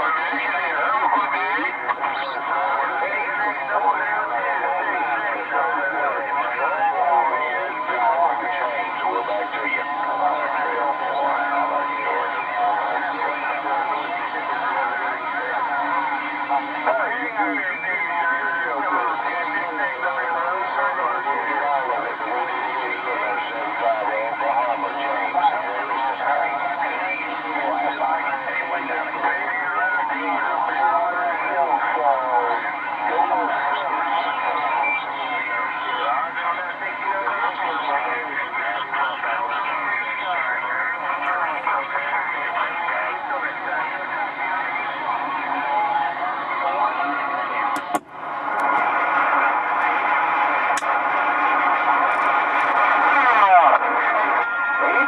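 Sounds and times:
garbled radio voices: 0.0 - 55.0
radio static: 0.0 - 55.0.

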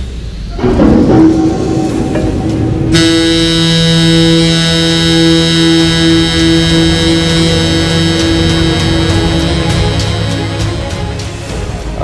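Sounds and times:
dramatic soundtrack music: 0.5 - 12.0
ship's horn blast: 1.9 - 12.0.

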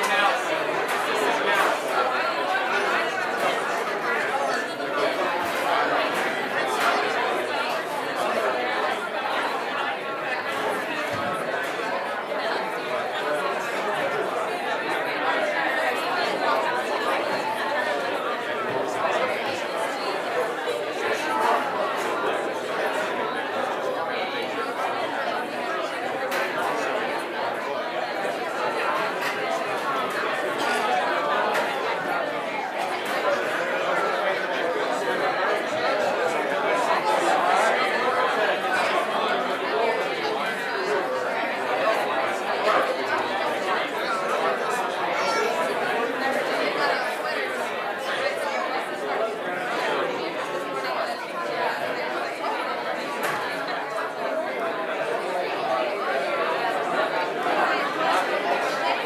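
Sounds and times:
crowd chatter in a hall: 0.0 - 59.0.

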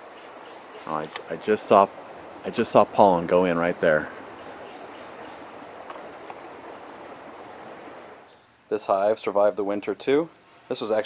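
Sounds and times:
soft outdoor hiss: 0.0 - 11.0.

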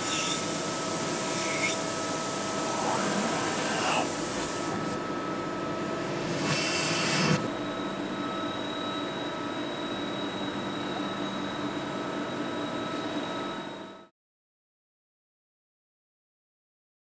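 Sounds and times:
machine mechanical hum: 0.0 - 14.1
whining machine tones: 0.0 - 14.1.

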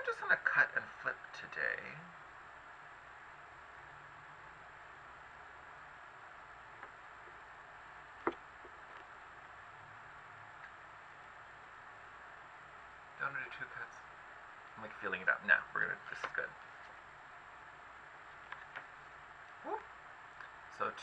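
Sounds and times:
faint hiss: 9.2 - 21.0.

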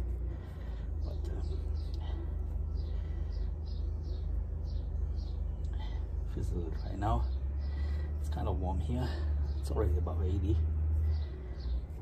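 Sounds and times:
bird chirping: 0.0 - 12.0
steady low rumble: 0.0 - 12.0.

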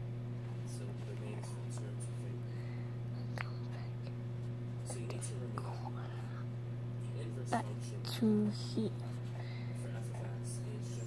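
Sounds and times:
low electrical hum: 0.0 - 11.0
soft whispering: 0.8 - 4.2, 4.8 - 6.5.

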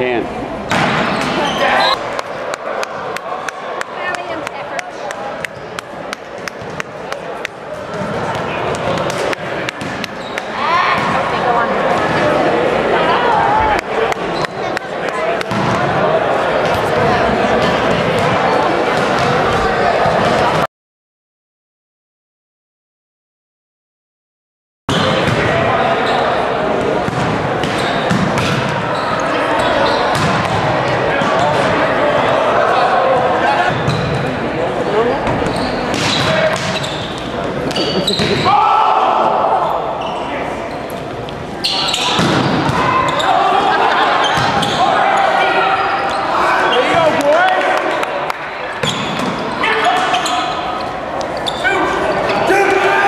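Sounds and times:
people talking at once: 0.0 - 9.7, 10.5 - 20.7
chatter and calls of people: 0.0 - 20.7, 24.9 - 53.0
volleyball hits echoing: 0.7 - 1.4, 2.1 - 12.2, 13.8 - 16.0, 24.9 - 25.7, 26.7 - 28.9, 29.6 - 31.8, 35.2 - 36.8, 41.9 - 43.3.

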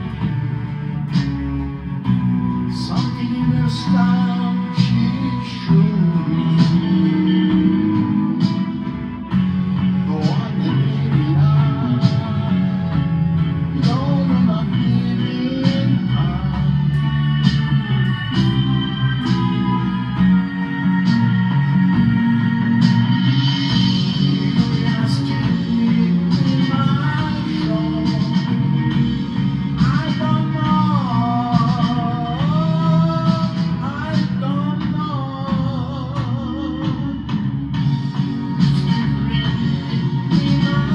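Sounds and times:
backing track with bass and beat: 0.0 - 40.9
electric guitar: 0.0 - 40.9
man singing: 2.5 - 22.8, 23.7 - 37.6, 38.5 - 40.9.

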